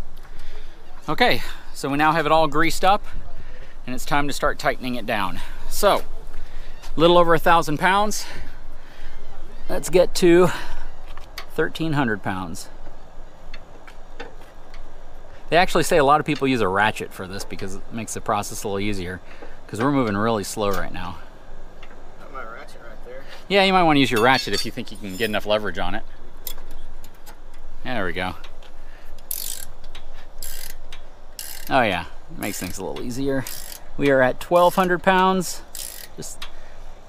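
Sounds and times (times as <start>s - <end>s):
hand tool metal clicks: 29.2s - 31.7s, 35.6s - 36.6s.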